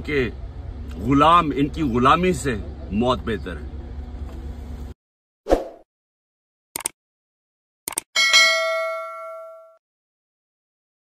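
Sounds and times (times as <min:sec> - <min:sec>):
double mouse click: 0:06.8 - 0:07.0
notification bell ding: 0:08.2 - 0:09.8.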